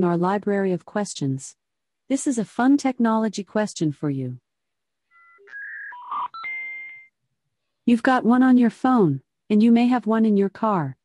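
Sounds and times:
quick electronic tones: 0:05.1 - 0:07.1.

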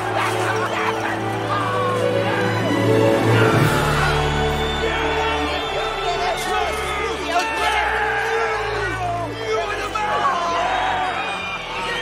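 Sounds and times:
crowd cheering: 0:00.0 - 0:12.0
film music: 0:00.0 - 0:12.0
men shouting excitedly: 0:00.0 - 0:12.0.

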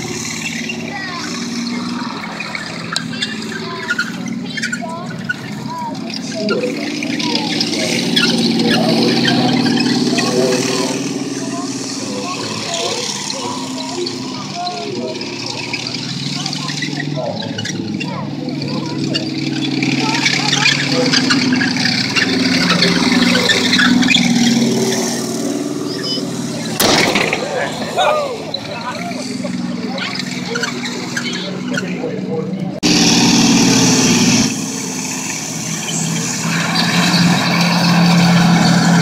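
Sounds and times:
tank engine running: 0:00.0 - 0:39.0.

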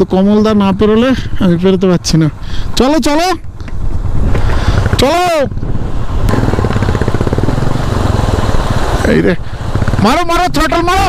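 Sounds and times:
motorcycle engine at low revs: 0:03.5 - 0:11.0.

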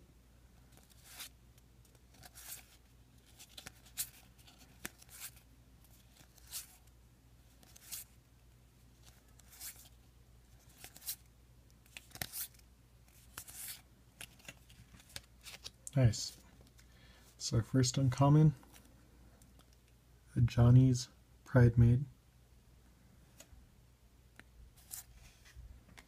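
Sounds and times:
cards sliding off a stack: 0:11.9 - 0:12.6.

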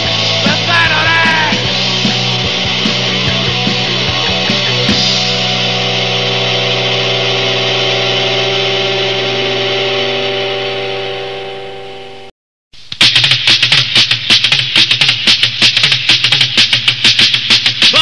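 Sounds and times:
punk rock music: 0:00.0 - 0:12.3, 0:13.0 - 0:18.0
fast loud drum hits: 0:13.0 - 0:18.0.

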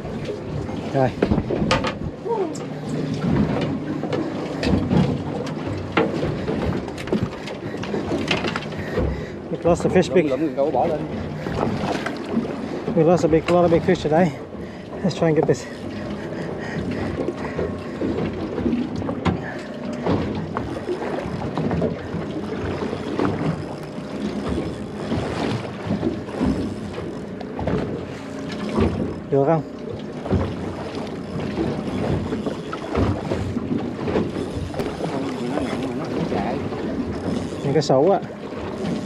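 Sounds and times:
water slapping a hull: 0:00.0 - 0:39.0
voices: 0:09.5 - 0:11.4.

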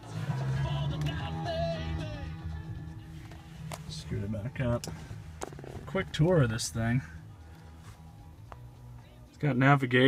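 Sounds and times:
steady low hum: 0:00.0 - 0:09.8
car radio music with singing: 0:00.0 - 0:10.0.

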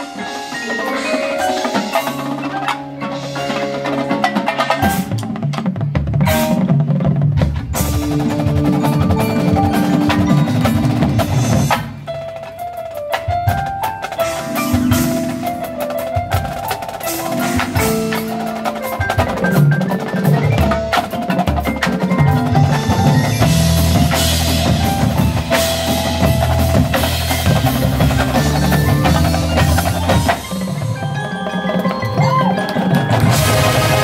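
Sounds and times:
marimbas and mallet percussion: 0:00.0 - 0:06.8, 0:07.7 - 0:34.0
marching drums and bass drums: 0:00.0 - 0:34.0.

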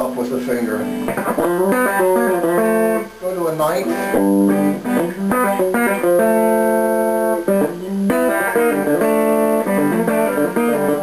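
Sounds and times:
electric guitar country lick: 0:00.0 - 0:11.0.

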